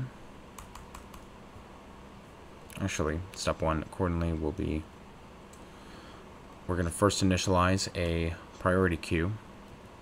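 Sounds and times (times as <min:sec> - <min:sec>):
computer keyboard typing: 0:00.6 - 0:01.3.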